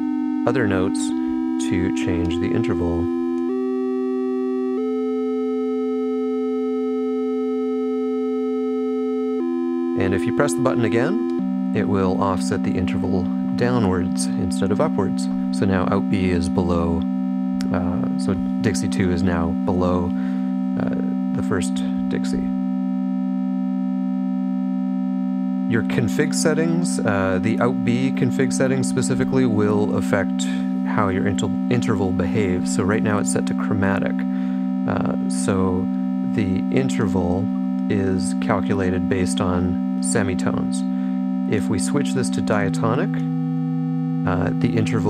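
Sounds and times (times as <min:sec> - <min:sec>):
steady low synth tone: 0:00.0 - 0:45.0
upper synth tone stepping up: 0:00.0 - 0:45.0.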